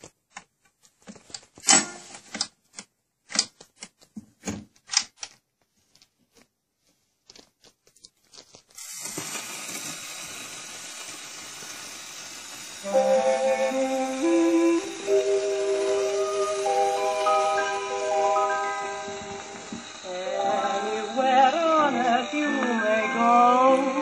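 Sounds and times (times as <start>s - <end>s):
record surface hiss: 0.0s - 24.0s.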